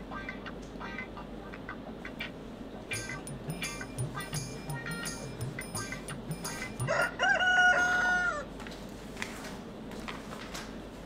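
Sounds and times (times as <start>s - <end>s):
background music with steady beat: 2.8s - 7.2s.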